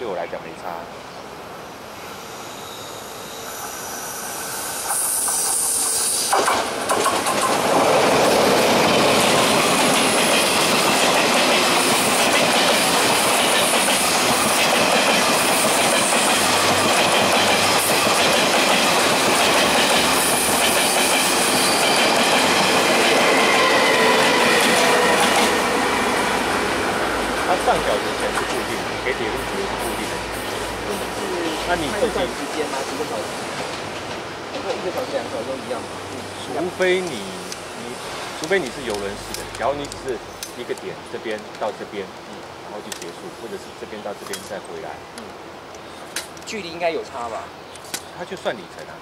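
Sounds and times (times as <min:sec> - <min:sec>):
high wheel squeals: 0:02.1 - 0:06.4, 0:21.3 - 0:22.2
train wheels clattering over rail joints: 0:04.9 - 0:23.4.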